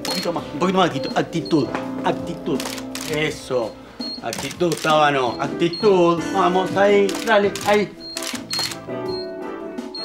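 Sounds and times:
background music held notes: 0.0 - 10.0
camera shutter clicks: 2.6 - 3.2, 4.3 - 5.0, 7.1 - 8.8.

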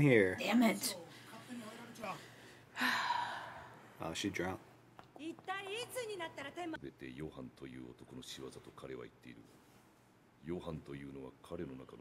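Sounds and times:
person gasping: 2.3 - 3.8.

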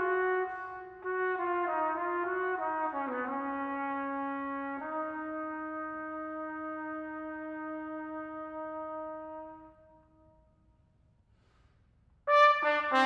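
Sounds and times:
trumpet long note: 0.0 - 10.4, 12.3 - 13.0.

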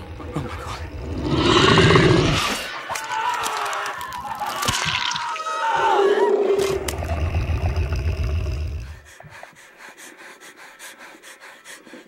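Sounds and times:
crackling clicks: 2.3 - 4.8.

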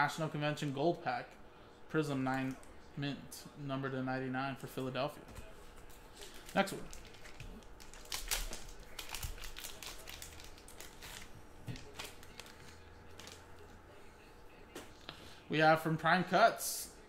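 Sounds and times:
foil wrapper tearing and crinkling: 6.3 - 13.4.

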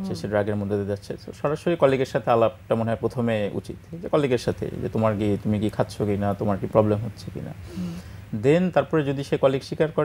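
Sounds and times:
person talking: 0.0 - 0.7.

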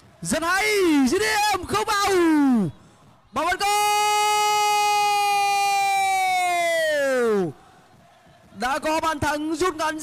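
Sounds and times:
man's long drawn-out shout: 3.4 - 7.6.

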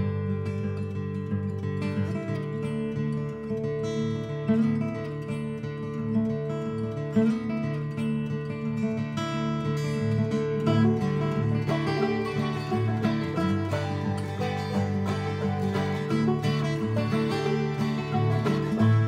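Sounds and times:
strummed acoustic guitar music: 0.0 - 19.0.

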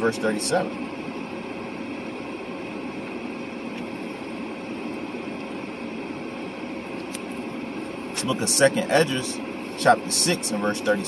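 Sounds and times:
ventilation fan running: 0.0 - 11.0.

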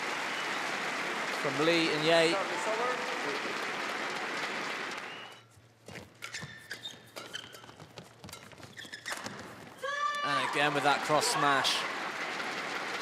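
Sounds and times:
arena applause: 0.0 - 5.4, 9.8 - 13.0
court shoes squeaking on floor: 5.0 - 10.2.

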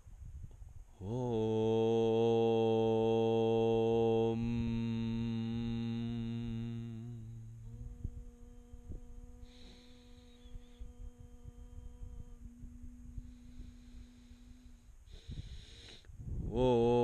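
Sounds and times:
man chanting om: 1.0 - 17.0.

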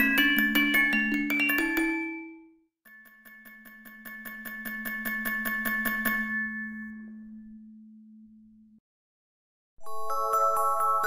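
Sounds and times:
music box tune: 0.0 - 2.6, 9.8 - 11.0
repeated bell-like notes: 0.0 - 2.6.

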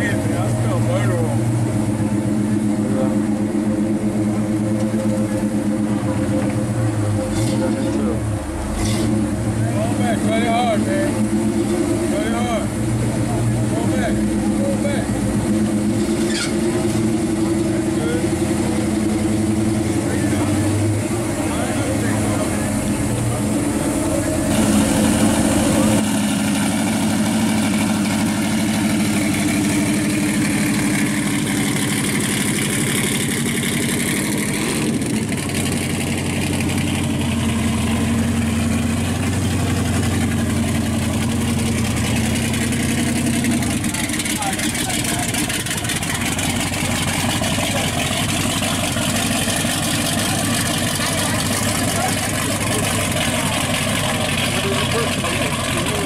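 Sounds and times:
car engines idling: 0.0 - 56.0
crowd voices: 0.0 - 56.0.

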